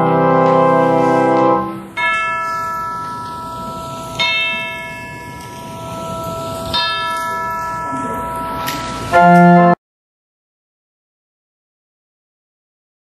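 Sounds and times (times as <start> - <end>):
chimes ringing: 0.0 - 9.8.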